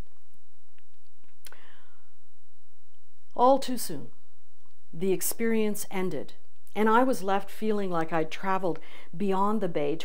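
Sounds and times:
low electrical hum: 0:00.0 - 0:10.0
soft breath intake: 0:01.5 - 0:02.2.

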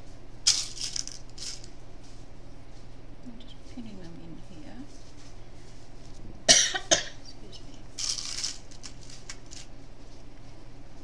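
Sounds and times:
person coughing: 0:06.5 - 0:07.2.

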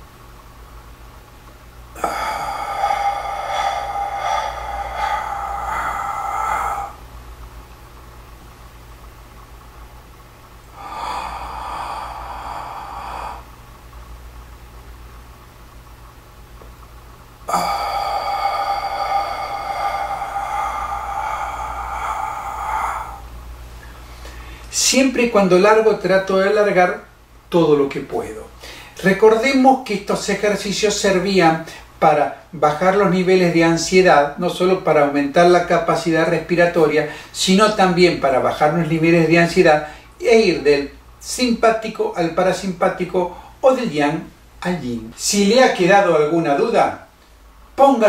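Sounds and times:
man breathing deeply: 0:02.0 - 0:07.1, 0:10.6 - 0:13.8, 0:17.4 - 0:24.7, 0:28.6 - 0:29.0.

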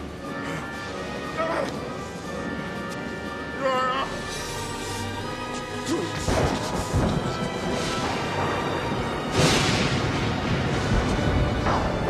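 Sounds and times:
orchestral film score: 0:00.0 - 0:12.0
heavy crashes and bangs: 0:06.2 - 0:12.0.

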